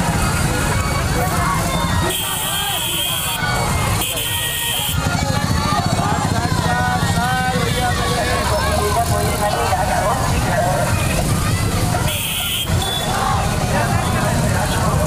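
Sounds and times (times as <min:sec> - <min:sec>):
motorcycle engines running: 0:00.0 - 0:15.0
people shouting: 0:00.0 - 0:15.0.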